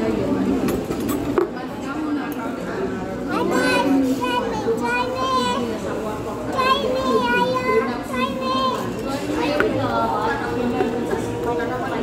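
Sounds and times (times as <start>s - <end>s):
children talking and calling out: 2.9s - 11.4s.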